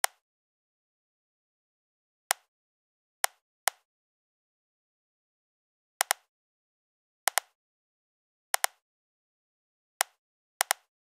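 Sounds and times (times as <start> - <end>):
computer mouse clicks: 6.0 - 6.3, 7.3 - 7.6, 8.6 - 8.8, 10.0 - 10.9.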